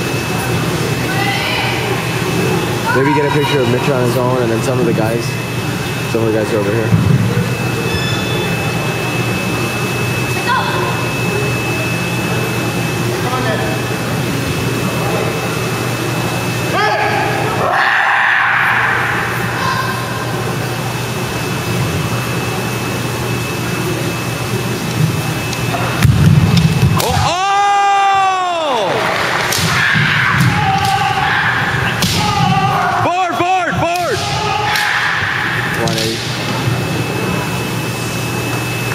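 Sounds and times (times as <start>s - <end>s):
gym hall noise: 0.0s - 38.9s
people shouting: 2.8s - 3.8s, 16.7s - 20.3s, 26.9s - 35.9s.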